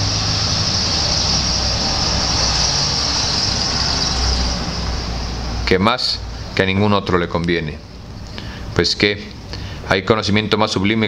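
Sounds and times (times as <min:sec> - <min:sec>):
vehicle engine hum and road hiss: 0:00.0 - 0:06.6.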